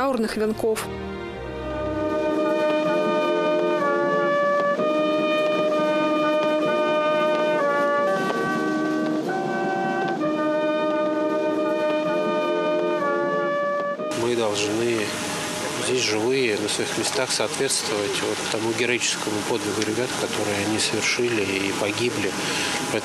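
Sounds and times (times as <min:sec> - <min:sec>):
brass band playing slow notes: 0:00.9 - 0:16.2
man talking: 0:14.1 - 0:15.2, 0:15.8 - 0:23.0.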